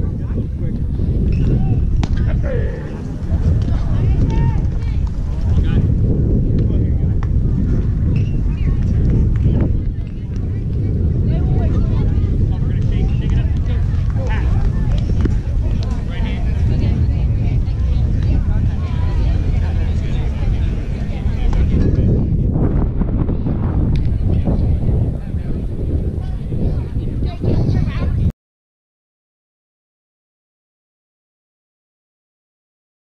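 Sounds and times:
indistinct voices chattering: 0.0s - 28.3s
wind buffeting microphone: 0.0s - 28.3s.

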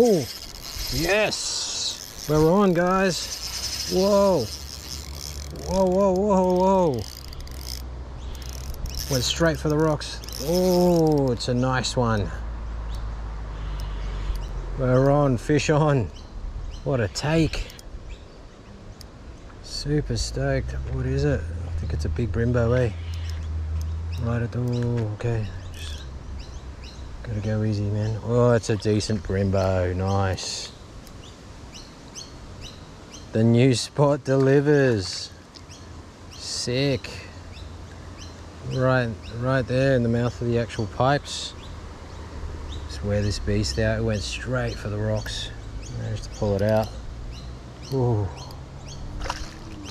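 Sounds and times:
fishing reel clicks: 0.0s - 11.4s
insects chirping: 0.0s - 33.6s, 35.4s - 49.9s.

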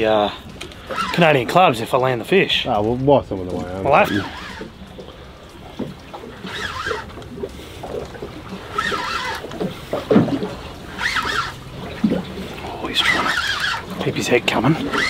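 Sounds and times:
water sloshing against hull: 0.0s - 15.0s.

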